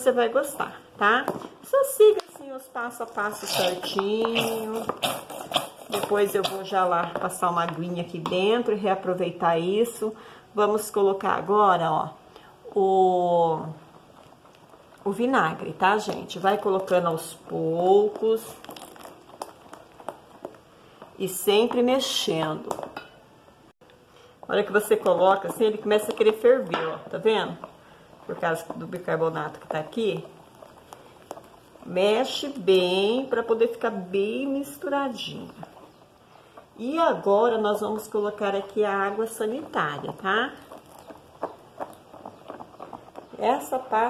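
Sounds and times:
spatula stirring thick paste: 2.8s - 8.7s, 13.5s - 22.9s, 24.5s - 44.0s
wet squelching sounds: 3.2s - 6.8s, 16.4s - 20.7s.

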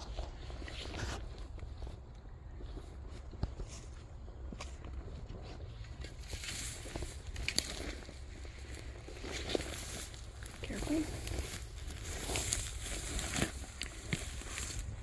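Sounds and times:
footsteps rustling dry reeds: 0.0s - 15.0s
steady low rumble: 0.0s - 15.0s.

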